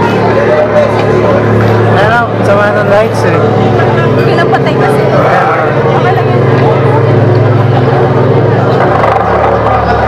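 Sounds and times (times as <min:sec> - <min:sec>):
people talking: 0:00.0 - 0:10.0
steady low hum: 0:00.0 - 0:10.0.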